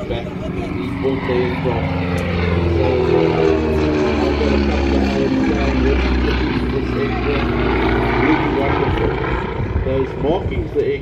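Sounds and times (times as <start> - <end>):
propeller plane engines droning: 0.0 - 11.0.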